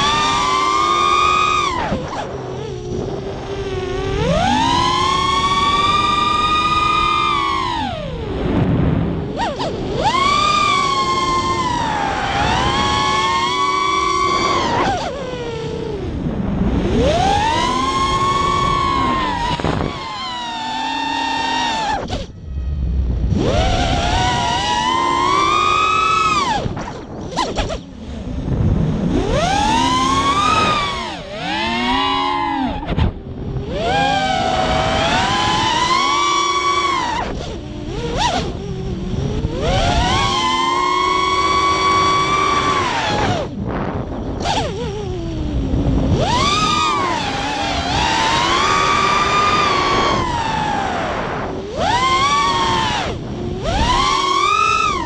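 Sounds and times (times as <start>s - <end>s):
drone motors whining: 0.0s - 55.0s.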